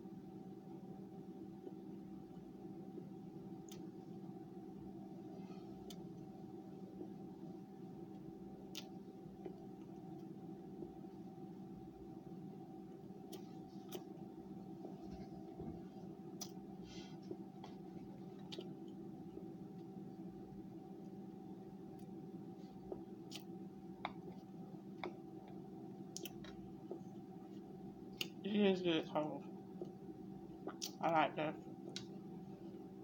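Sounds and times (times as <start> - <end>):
crunchy chewing: 17.7 - 19.0.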